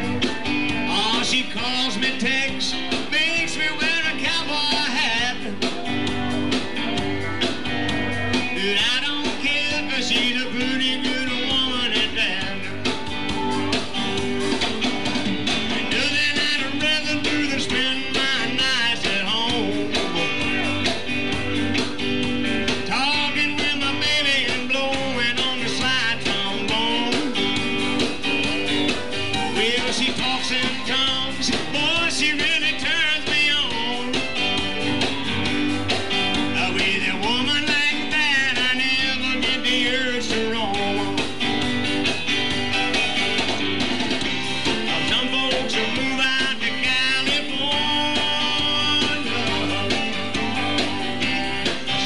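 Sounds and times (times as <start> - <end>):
electric blues band playing: 0.0 - 52.0
electric guitar: 0.0 - 52.0
steady drum beat: 0.0 - 52.0.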